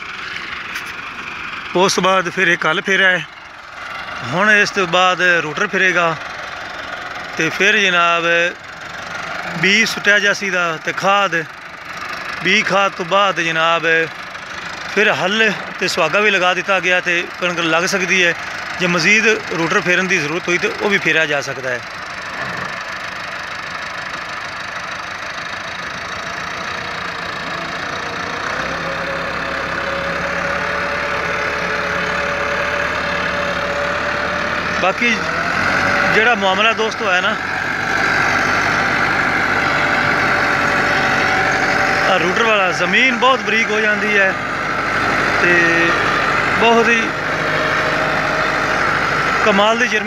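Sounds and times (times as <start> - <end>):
tractor diesel engine running: 0.0 - 50.0.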